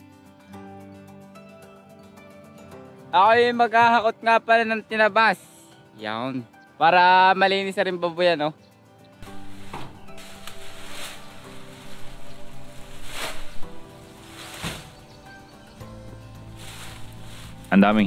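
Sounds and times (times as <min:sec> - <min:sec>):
background music: 0:00.0 - 0:18.0
leafy branches rustling: 0:09.2 - 0:18.0
loud swishes of branches: 0:09.2 - 0:18.0.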